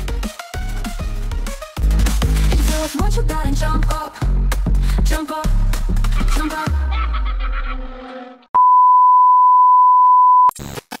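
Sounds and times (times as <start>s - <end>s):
music: 0.0s - 8.5s
steady electronic beep: 8.6s - 10.5s.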